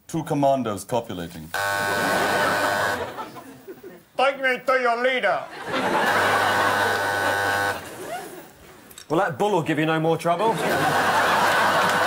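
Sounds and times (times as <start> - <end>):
game-show buzzer: 1.6 - 3.2, 5.9 - 7.8, 11.1 - 12.0.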